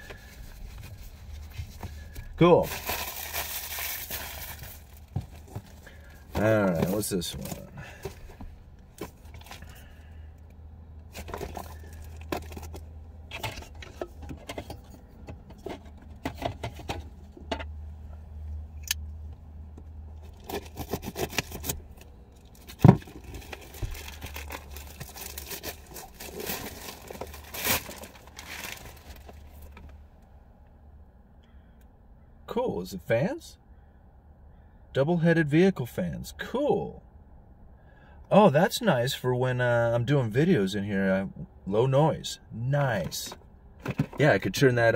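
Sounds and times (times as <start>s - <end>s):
packaging rustling and tearing: 2.6s - 5.8s, 20.3s - 21.8s, 22.5s - 29.8s.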